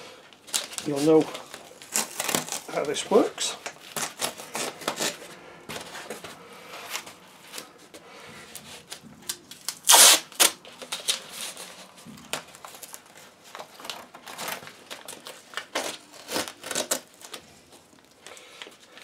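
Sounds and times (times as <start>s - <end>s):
tape crinkling on cardboard: 0.2s - 19.0s
masking tape ripping: 0.5s - 5.3s, 8.8s - 17.4s.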